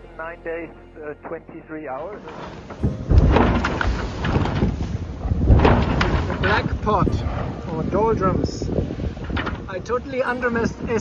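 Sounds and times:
irregular knocks: 1.3 - 7.7, 9.1 - 9.9
water rushing around boat: 1.9 - 11.0
wind buffeting microphone: 2.5 - 11.0.

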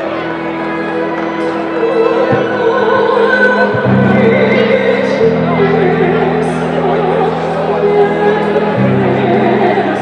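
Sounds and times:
music accompaniment: 0.0 - 10.0
woman singing with vibrato: 1.4 - 10.0.

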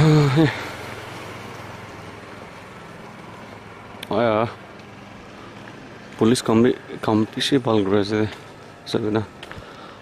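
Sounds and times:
road noise: 0.0 - 10.0
vehicle engine hum: 0.0 - 10.0.

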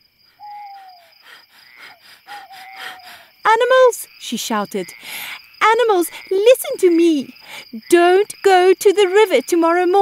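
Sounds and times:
crickets chirping: 0.0 - 10.0
owl hooting: 0.4 - 3.2.

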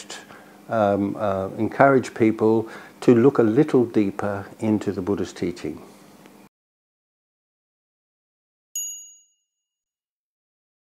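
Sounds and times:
bell-like chime ding: 8.8 - 9.8.

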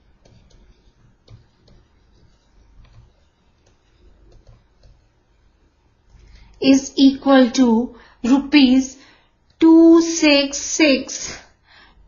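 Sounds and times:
low steady hum: 0.0 - 12.0
stylus tapping on pen tablet: 0.2 - 5.1.

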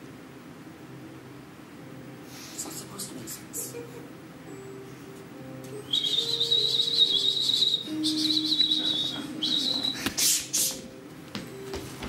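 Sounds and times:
high-pitched warbling whistle: 5.8 - 10.9.

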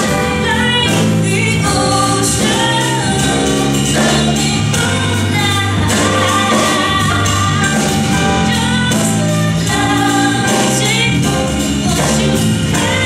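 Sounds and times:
acoustic piano: 0.0 - 13.0
drums with steady cymbal beat: 0.0 - 13.0
electric bass: 0.0 - 13.0
women singing together: 0.0 - 13.0.

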